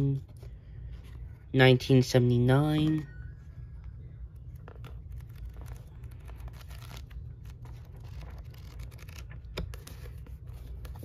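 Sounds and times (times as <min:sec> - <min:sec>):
book pages flipping: 0:03.8 - 0:11.0.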